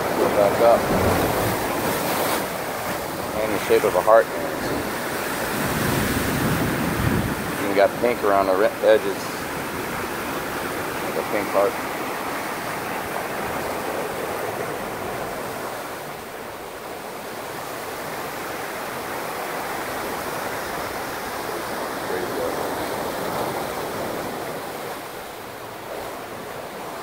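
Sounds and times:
ocean surf churning in rocks: 0:00.0 - 0:27.0.

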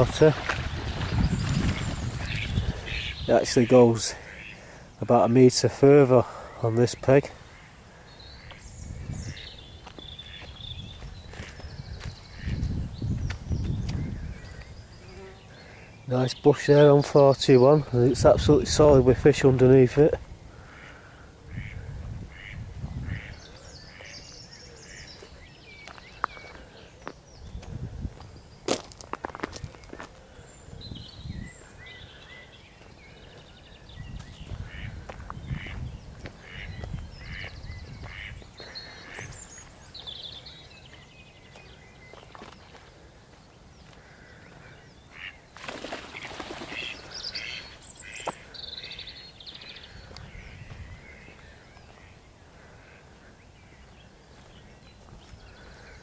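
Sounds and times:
birds calling and chirping: 0:00.0 - 0:56.0.

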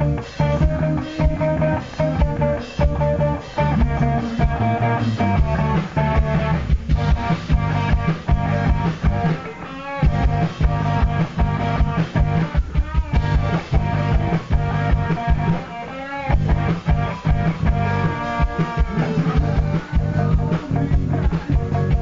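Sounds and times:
bass guitar: 0:00.0 - 0:22.0
electric guitar chords: 0:00.0 - 0:22.0
steady drum beat: 0:00.0 - 0:22.0.

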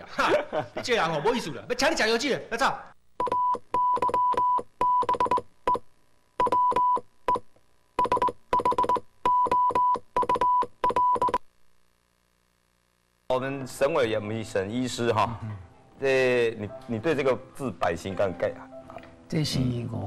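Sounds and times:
electronic keyboard-like beeps: 0:03.2 - 0:05.8, 0:06.4 - 0:07.4, 0:08.0 - 0:11.4.

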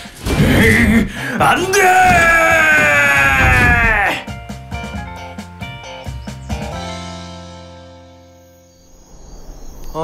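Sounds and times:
cartoon background music: 0:01.6 - 0:08.4.

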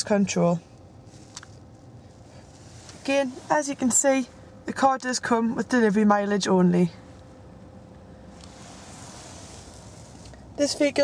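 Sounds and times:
car cabin rumble and hiss: 0:00.0 - 0:11.0.

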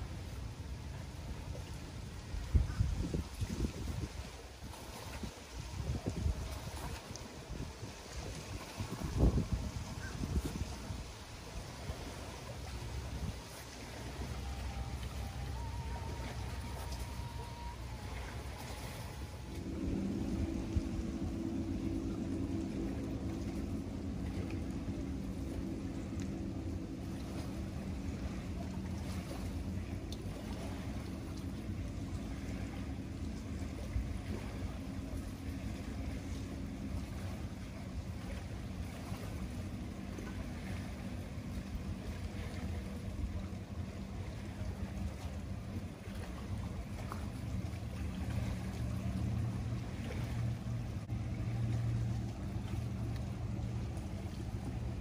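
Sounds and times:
distant motorboat engine hum: 0:00.0 - 0:55.0
wind rumbling on microphone: 0:00.0 - 0:55.0.

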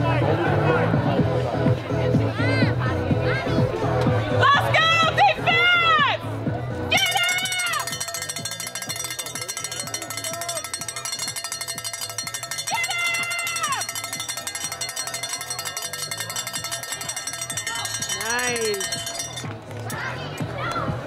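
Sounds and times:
cowbell clanking rapidly: 0:07.0 - 0:19.7
spectator shouting: 0:12.7 - 0:13.8.

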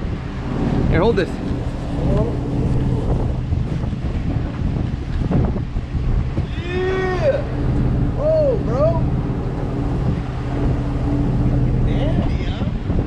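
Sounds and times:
boat engine humming: 0:00.0 - 0:13.0
wind on microphone: 0:00.0 - 0:13.0.

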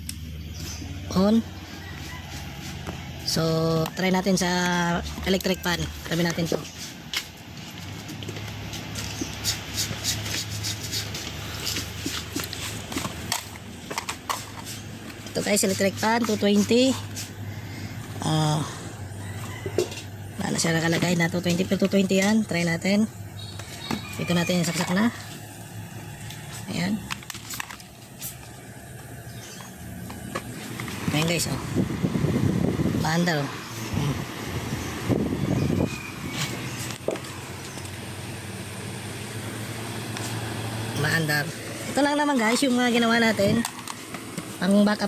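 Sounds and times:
steady low hum: 0:00.0 - 0:45.0
equipment and cables handled: 0:05.1 - 0:17.4, 0:23.4 - 0:31.6, 0:41.8 - 0:45.0.

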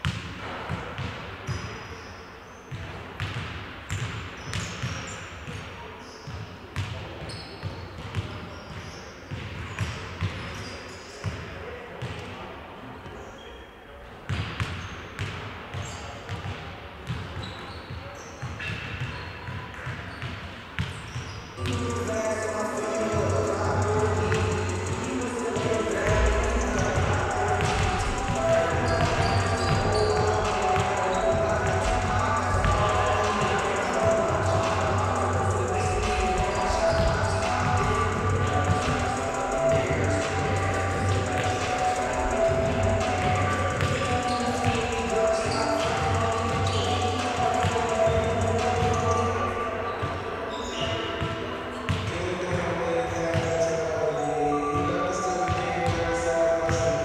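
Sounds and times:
basketballs bouncing on wooden court: 0:00.0 - 0:01.7, 0:02.7 - 0:05.6, 0:06.3 - 0:10.6, 0:14.3 - 0:17.6, 0:23.0 - 0:49.2, 0:49.9 - 0:53.7
music in sports hall: 0:20.8 - 0:57.0.

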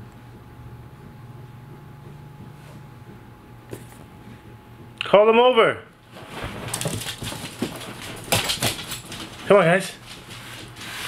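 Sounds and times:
dog paws thumping and scrabbling: 0:06.0 - 0:11.0.

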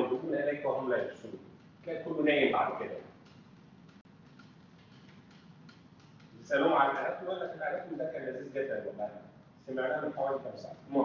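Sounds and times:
marker pen tapping on whiteboard: 0:02.9 - 0:06.4.

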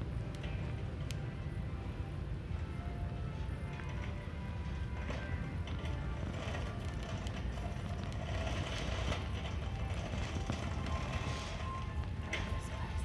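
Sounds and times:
background music: 0:00.0 - 0:13.0
shopping cart rolling: 0:03.3 - 0:13.0.

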